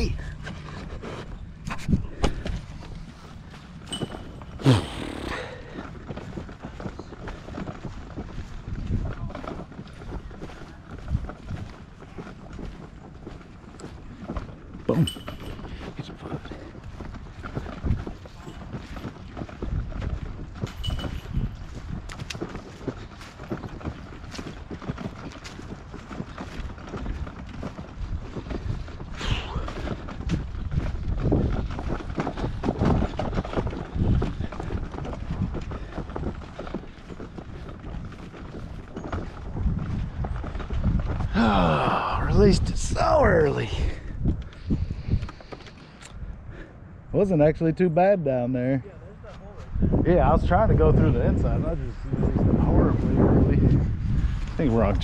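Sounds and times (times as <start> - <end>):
wind rumbling on microphone: 0.0 - 55.0.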